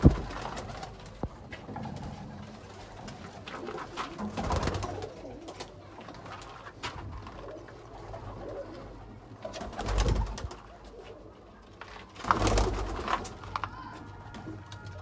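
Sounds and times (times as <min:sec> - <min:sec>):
pigeons cooing softly: 0:00.5 - 0:13.4.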